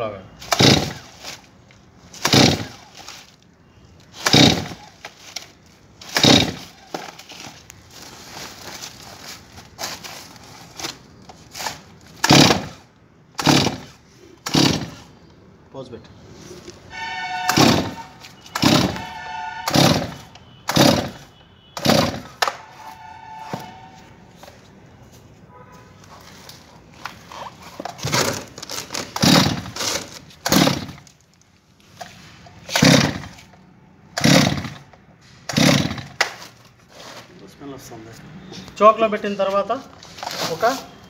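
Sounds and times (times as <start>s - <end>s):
chainsaw starter cord pulls: 0.4s - 1.5s, 2.2s - 3.2s, 4.2s - 7.5s, 11.6s - 12.8s, 13.4s - 15.1s, 17.5s - 19.1s, 19.7s - 21.2s, 21.8s - 22.3s, 27.8s - 31.2s, 32.0s - 33.5s, 34.2s - 36.5s.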